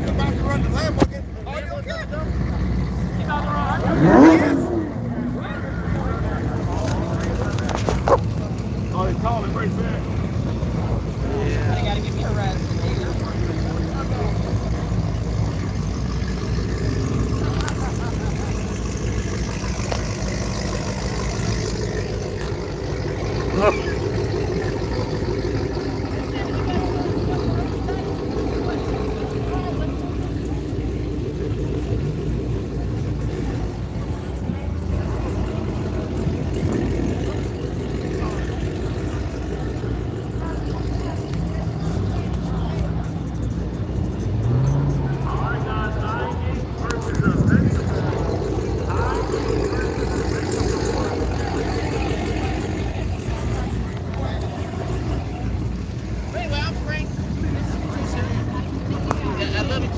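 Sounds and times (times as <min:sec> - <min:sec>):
car engines rumbling: 0:00.0 - 0:59.9
people talking: 0:00.0 - 0:59.9.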